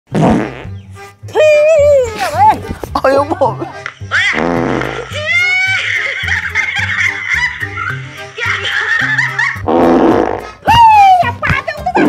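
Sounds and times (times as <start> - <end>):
fart noises: 0.1 - 0.8, 4.2 - 5.3, 9.6 - 10.6
comedy background music: 0.1 - 12.0.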